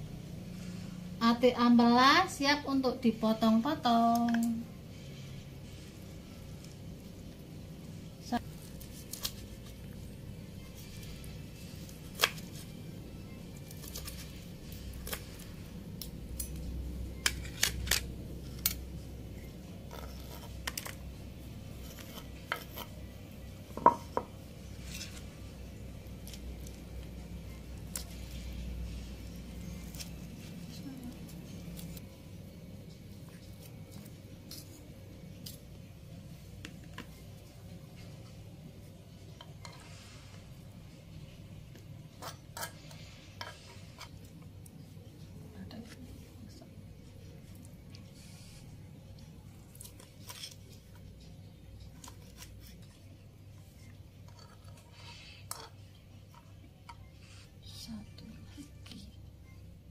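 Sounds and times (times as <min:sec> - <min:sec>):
fork on plates: 0:42.1 - 0:44.5, 0:53.8 - 0:57.5.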